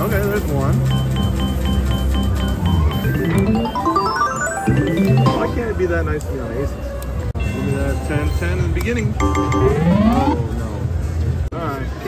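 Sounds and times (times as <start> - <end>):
video poker machine beeps: 0.7 - 6.0, 9.1 - 10.4
electronic tones climbing in pitch: 1.2 - 6.0, 9.2 - 10.4.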